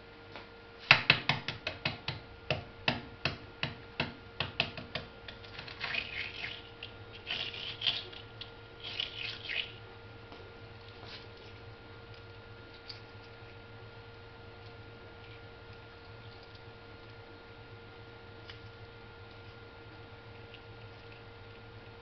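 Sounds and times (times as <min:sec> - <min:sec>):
eggshell cracking and crackling: 0:05.2 - 0:09.8.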